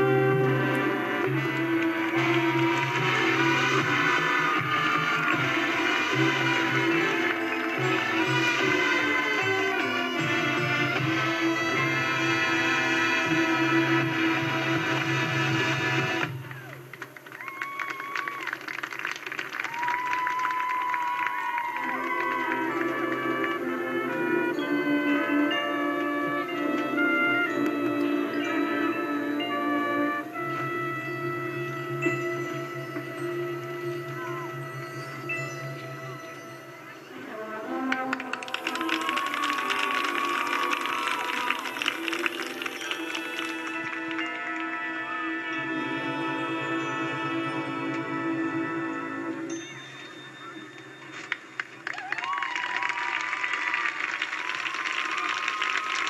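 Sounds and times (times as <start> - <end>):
marching band music: 0.0 - 17.3, 18.0 - 51.8.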